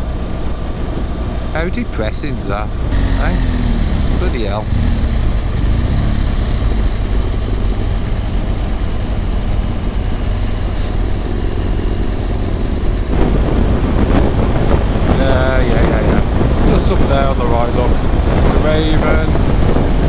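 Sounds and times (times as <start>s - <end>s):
motorcycle engine running: 0.0s - 20.0s
wind on microphone: 2.8s - 20.0s.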